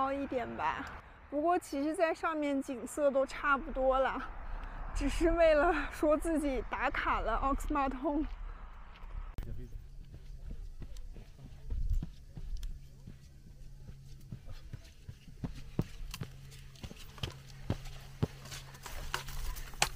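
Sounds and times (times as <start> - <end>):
steady low hum: 0.0 - 19.9
boots and poles clicking on rock: 9.4 - 19.9.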